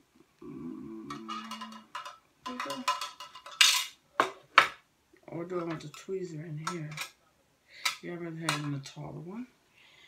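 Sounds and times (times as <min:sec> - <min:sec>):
faint pitched hum: 0:00.0 - 0:10.0
plastic pieces clicking and clattering: 0:01.1 - 0:04.0.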